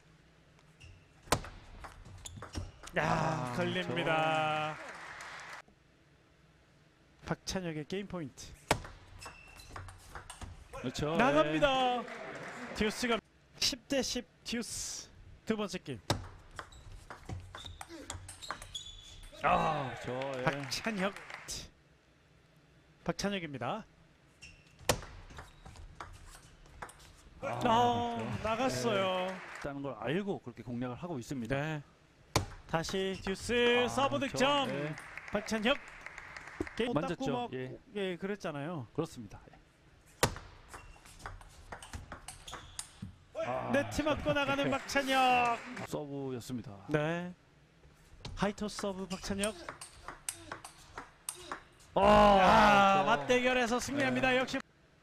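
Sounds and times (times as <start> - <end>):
shoes squeaking on floor: 0.7 - 1.3, 2.0 - 2.9, 9.1 - 10.7, 16.6 - 19.4, 24.3 - 26.7, 40.1 - 43.2, 49.0 - 51.7.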